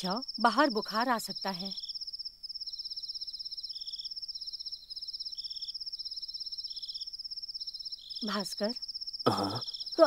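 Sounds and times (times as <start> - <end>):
crickets chirping high trill: 0.0 - 10.0
lower insect trill bursts: 0.0 - 10.0.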